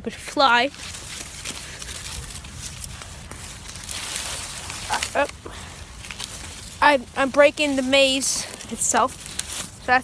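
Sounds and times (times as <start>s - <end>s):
rustles and clicks: 0.1s - 10.0s.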